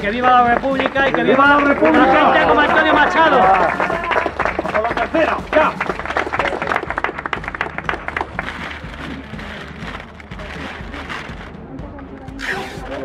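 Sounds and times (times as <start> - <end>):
small crowd applauding: 0.0 - 9.0.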